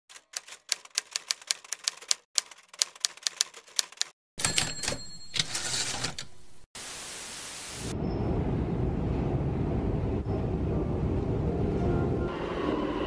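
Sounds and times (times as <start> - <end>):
typewriter keys clacking: 0.1 - 6.5.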